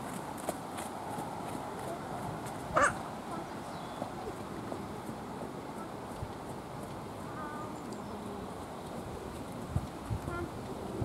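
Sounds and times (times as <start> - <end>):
faint outdoor background: 0.0 - 11.0.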